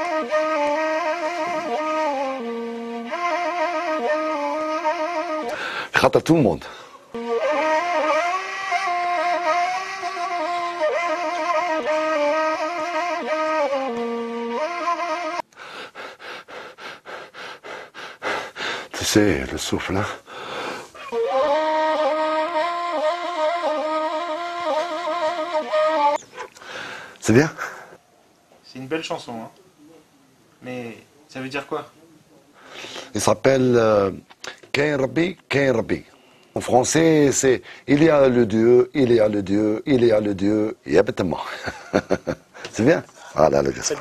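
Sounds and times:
cane flute melody with trills: 0.0 - 5.8, 7.1 - 15.5, 21.0 - 26.4
breathy burst of noise: 5.5 - 6.0, 20.1 - 21.0, 26.6 - 28.0.

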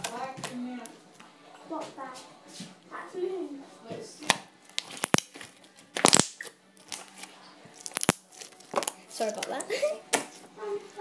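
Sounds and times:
slime popping and crackling: 4.3 - 7.1, 7.8 - 9.0.

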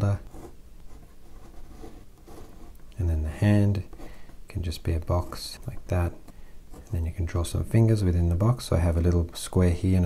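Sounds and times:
pen scratching on paper: 0.2 - 2.8.

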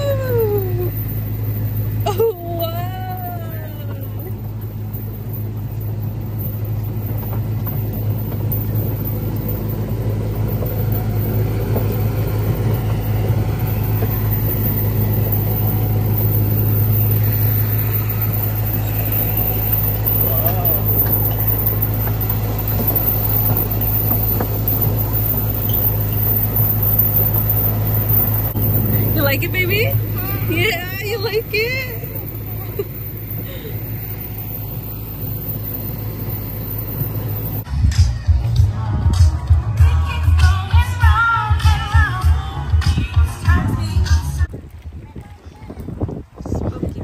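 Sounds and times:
cars rolling over dirt path: 0.0 - 37.7
vehicle engine hum: 0.0 - 47.0.

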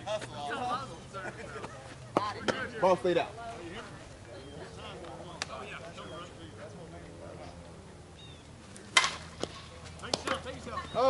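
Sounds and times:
bat striking ball crack: 8.8 - 10.5.

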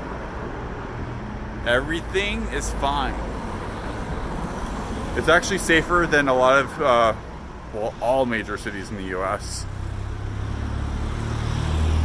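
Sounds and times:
cars passing on road: 0.0 - 12.0.

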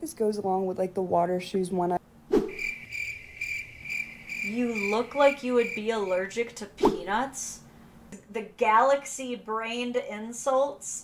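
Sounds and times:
crickets chirping sound effect: 2.4 - 6.3.

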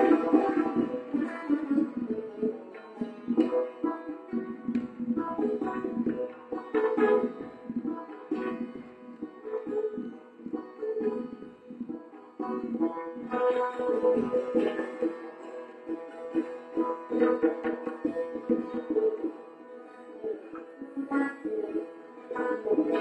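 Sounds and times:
plucked long-necked lute: 0.0 - 23.0.

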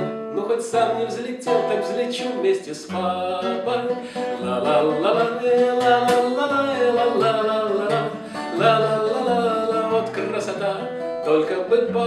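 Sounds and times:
man singing: 0.0 - 12.0
strummed acoustic guitar: 0.0 - 12.0.

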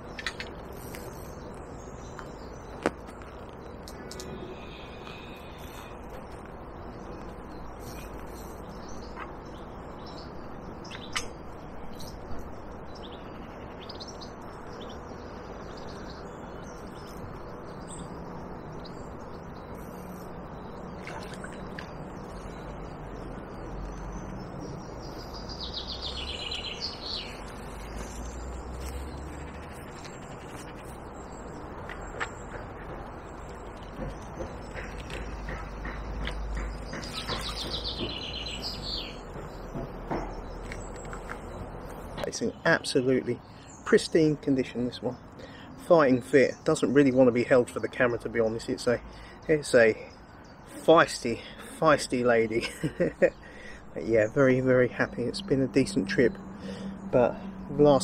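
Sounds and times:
outdoor background hiss: 0.0 - 58.0
sharp clicks: 10.9 - 11.4.

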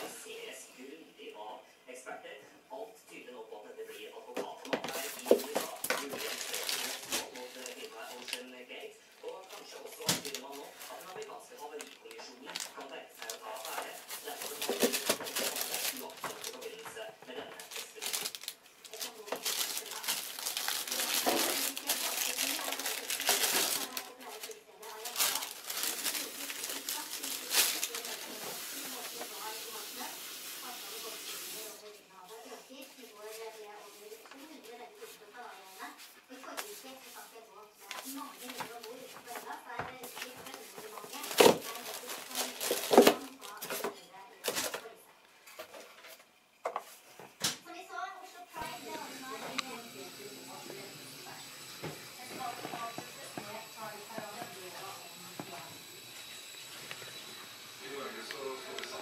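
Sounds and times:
packaging rustling and crinkling: 4.6 - 30.4, 37.8 - 44.9.

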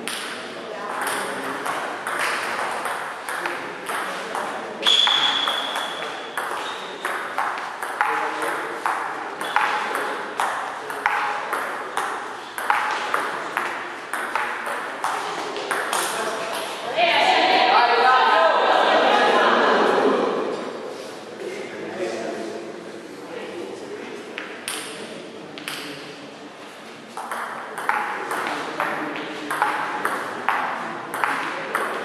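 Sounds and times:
brief high squeak: 4.8 - 6.9.

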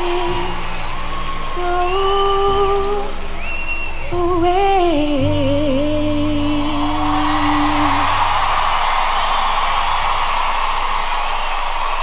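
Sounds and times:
soft musical backing: 0.0 - 12.0.

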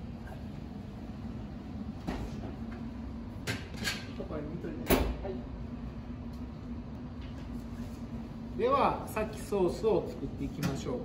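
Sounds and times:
low hum of kitchen equipment: 0.0 - 11.0.

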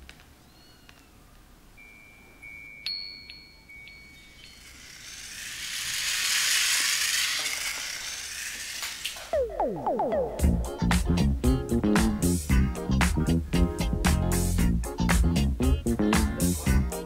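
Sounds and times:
high thin chime tone: 1.8 - 5.0
sharp ticks: 3.8 - 10.5.

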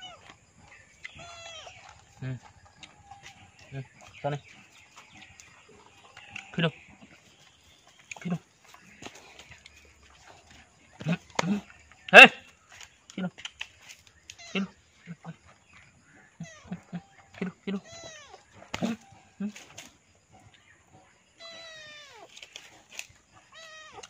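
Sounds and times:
man calling out: 11.0 - 12.4
kitten meowing: 17.8 - 18.3.

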